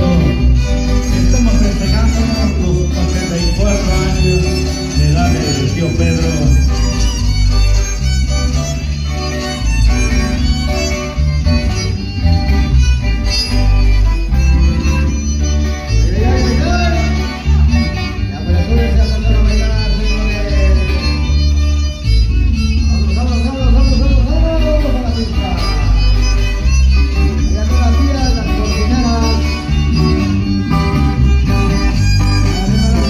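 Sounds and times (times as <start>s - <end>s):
acoustic guitars: 0.0s - 33.0s
electric bass: 0.0s - 33.0s
violin melody: 0.0s - 33.0s.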